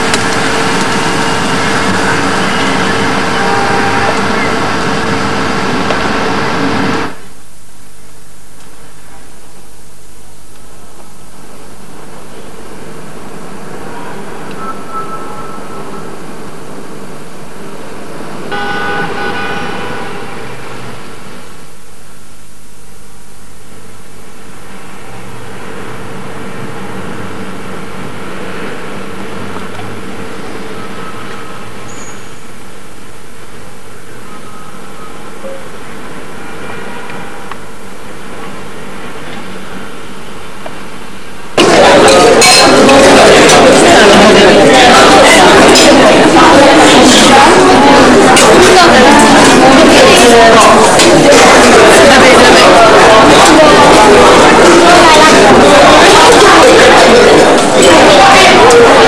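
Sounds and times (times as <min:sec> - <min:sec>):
car horn: 0:03.2 - 0:04.6, 0:18.5 - 0:21.0.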